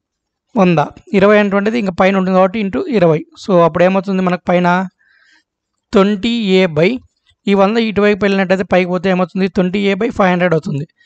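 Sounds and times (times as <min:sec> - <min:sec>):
man speaking: 0:00.6 - 0:04.9, 0:06.0 - 0:11.0.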